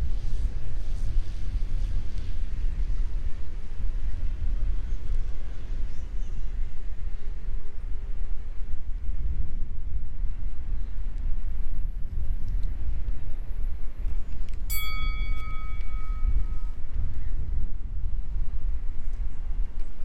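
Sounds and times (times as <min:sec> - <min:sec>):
bell chime: 0:14.7 - 0:16.8.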